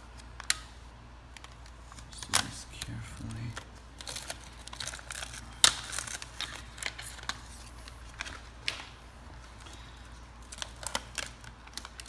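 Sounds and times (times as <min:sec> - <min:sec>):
plastic bags crinkling: 0:01.3 - 0:12.0.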